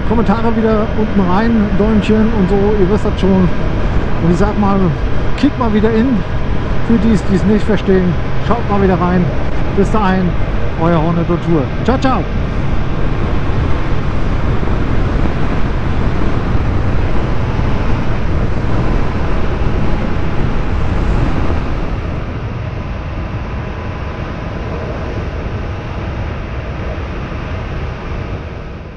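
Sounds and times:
motorcycle engine and road rush: 0:00.0 - 0:28.9.

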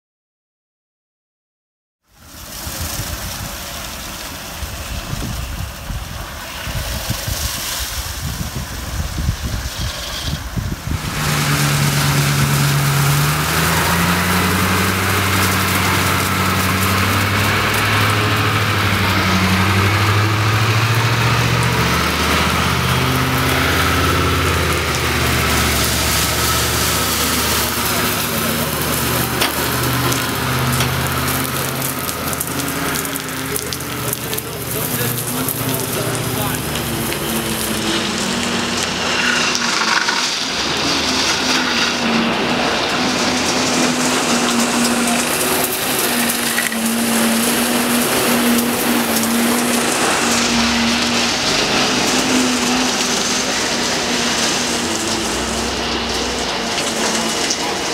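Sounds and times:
wash machine humming: 0:02.1 - 0:57.9
rotating brush and water spray: 0:02.3 - 0:57.9
voices: 0:11.1 - 0:57.9.

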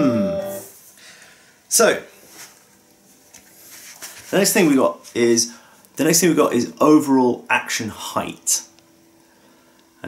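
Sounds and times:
rustling and handling noise: 0:01.6 - 0:06.0.

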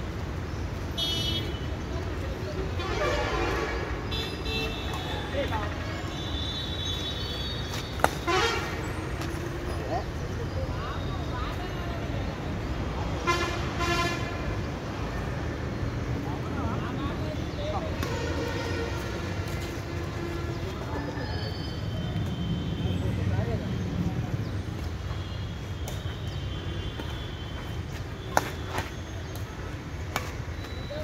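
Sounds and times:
racquet striking shuttlecock: 0:07.7 - 0:08.3, 0:28.3 - 0:29.5, 0:30.1 - 0:30.4.

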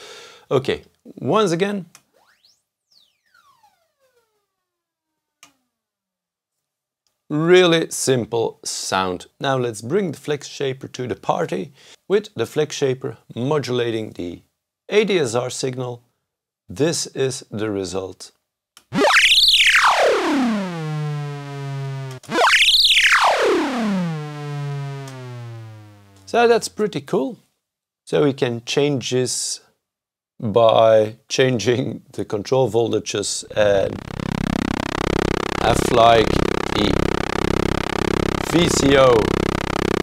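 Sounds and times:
synthesizer tone gliding down: 0:19.0 - 0:26.2, 0:33.5 - 0:40.0
click: 0:22.0 - 0:22.4, 0:25.0 - 0:25.3, 0:33.5 - 0:40.0.

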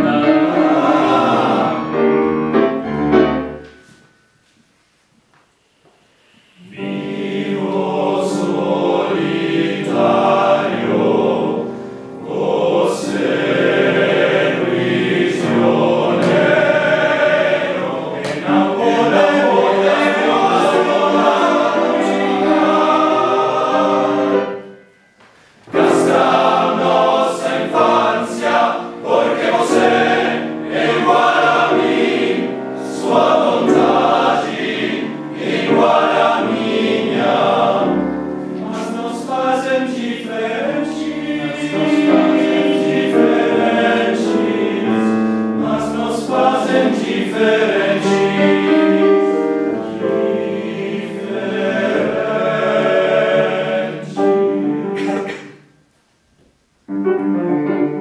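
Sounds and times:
men's choir singing: 0:00.0 - 0:03.6, 0:06.6 - 0:24.9, 0:25.7 - 0:55.6
piano accompaniment: 0:00.0 - 0:04.5, 0:06.6 - 0:55.9, 0:56.8 - 0:58.0.

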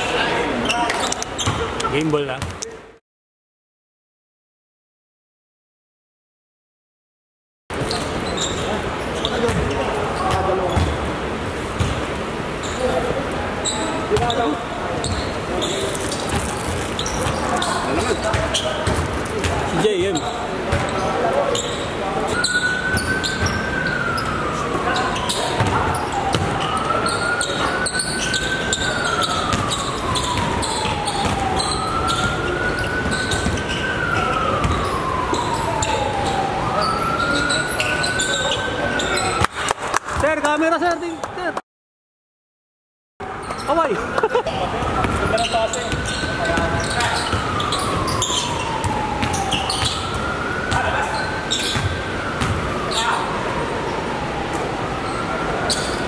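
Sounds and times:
basketball bouncing on court: 0:01.4 - 0:02.7, 0:09.2 - 0:11.1, 0:11.8 - 0:12.1, 0:16.1 - 0:21.0, 0:25.2 - 0:26.6, 0:29.2 - 0:32.4, 0:33.0 - 0:35.0, 0:44.8 - 0:51.0, 0:51.6 - 0:52.7
players' voices echoing: 0:08.2 - 0:41.6, 0:43.4 - 0:56.0
siren wailing: 0:22.0 - 0:39.4, 0:44.1 - 0:56.0.

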